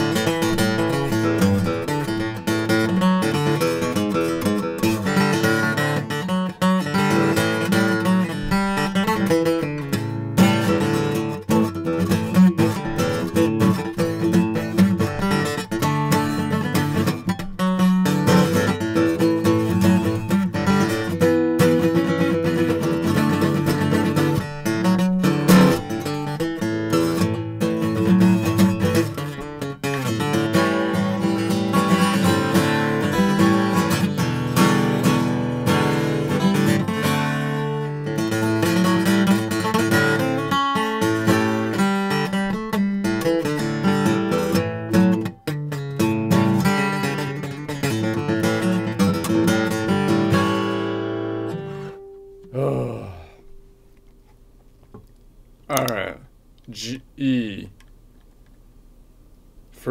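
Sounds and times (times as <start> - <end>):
acoustic guitar strumming chords: 0.0 - 55.1, 55.7 - 57.7.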